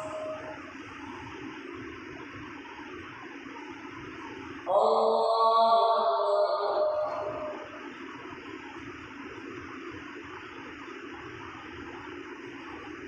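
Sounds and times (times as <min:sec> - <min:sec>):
chanting voice: 0:00.0 - 0:01.2, 0:04.7 - 0:07.9.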